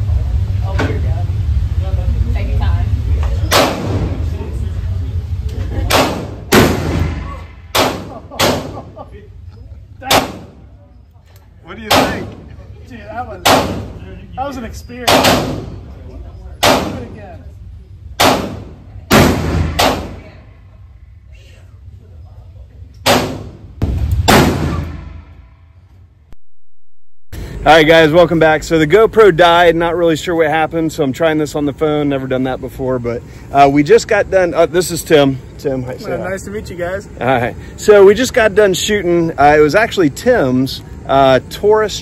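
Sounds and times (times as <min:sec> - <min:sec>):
handgun shots with echo: 0:03.5 - 0:04.0, 0:05.9 - 0:08.8, 0:10.1 - 0:10.6, 0:13.4 - 0:13.9, 0:15.1 - 0:15.7, 0:16.6 - 0:17.1, 0:18.2 - 0:20.3, 0:23.0 - 0:25.2
quieter gunshot bang: 0:05.9 - 0:08.8, 0:18.2 - 0:20.4, 0:23.1 - 0:25.4.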